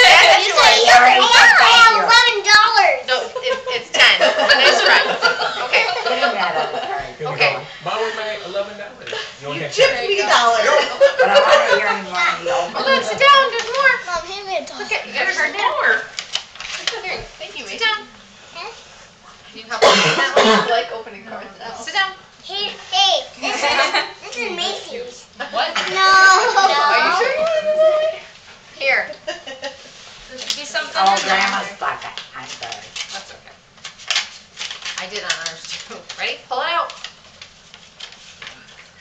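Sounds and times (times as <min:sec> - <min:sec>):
child's voice: 0:00.0 - 0:03.0, 0:12.2 - 0:15.0, 0:24.2 - 0:25.2, 0:25.8 - 0:27.3
indistinct voices in a room: 0:00.0 - 0:39.0
paper crackling: 0:16.1 - 0:17.1, 0:32.0 - 0:39.0.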